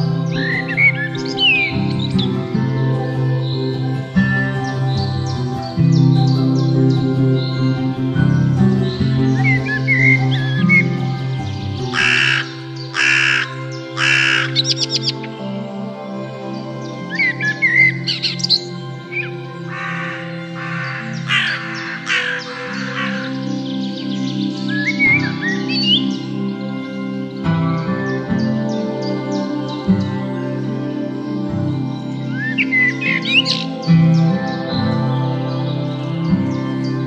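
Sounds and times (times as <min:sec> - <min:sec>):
calm keyboard music: 0:00.0 - 0:37.0
small birds chirping: 0:00.0 - 0:37.0
crow cawing: 0:11.9 - 0:15.2, 0:19.2 - 0:23.6.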